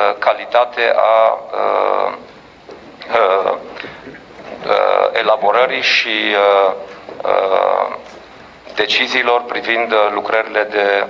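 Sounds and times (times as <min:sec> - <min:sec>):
man speaking: 0:00.0 - 0:02.4, 0:03.0 - 0:08.1, 0:08.7 - 0:11.0.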